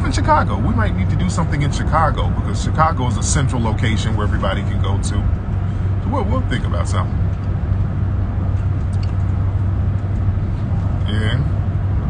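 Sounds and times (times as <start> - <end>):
car cabin engine and road rumble: 0.0 - 12.0.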